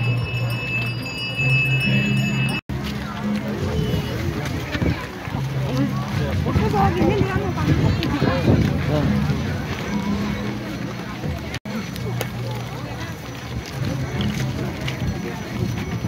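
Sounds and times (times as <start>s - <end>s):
crowd talking and calling out: 0.0s - 16.0s
faint music: 0.0s - 16.0s.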